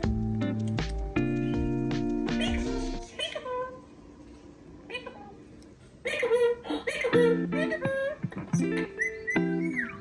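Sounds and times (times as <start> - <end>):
parrot calling: 6.0 - 10.0.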